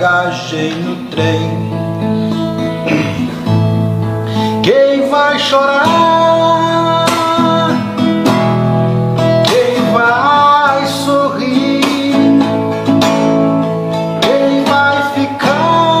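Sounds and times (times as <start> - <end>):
man singing long notes: 0.0 - 2.2, 4.3 - 8.4, 9.3 - 13.0, 13.9 - 16.0
acoustic guitar strumming: 0.0 - 16.0.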